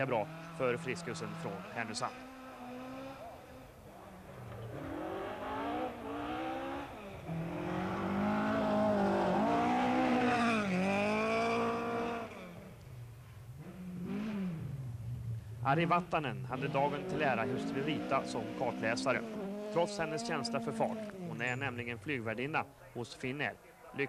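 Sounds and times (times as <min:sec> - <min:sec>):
rally car engine revving: 0:00.0 - 0:12.8, 0:13.6 - 0:21.9
second car engine: 0:00.0 - 0:22.6.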